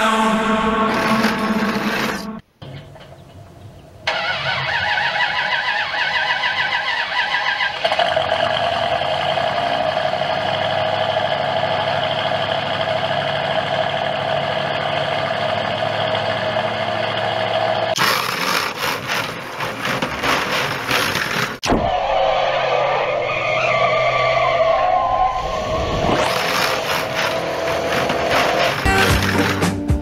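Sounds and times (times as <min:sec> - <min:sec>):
engine revving: 0:00.0 - 0:02.4, 0:04.1 - 0:19.4, 0:22.7 - 0:30.0
car engine starting and idling: 0:00.0 - 0:02.9, 0:04.0 - 0:21.6, 0:23.4 - 0:30.0.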